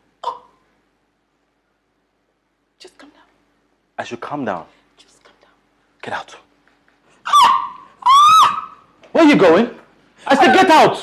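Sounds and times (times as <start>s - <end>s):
woman's startled exclamation: 7.2s - 8.8s.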